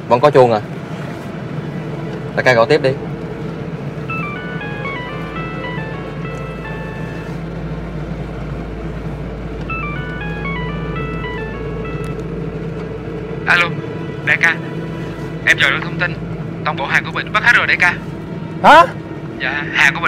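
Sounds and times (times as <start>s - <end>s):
car cabin hum: 0.0s - 20.0s
mobile phone ringtone: 4.0s - 8.2s, 9.6s - 13.3s.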